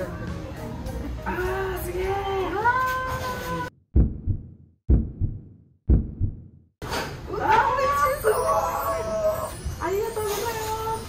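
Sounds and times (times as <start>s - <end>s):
music: 0.0s - 3.7s
heartbeat thumps: 3.9s - 6.7s.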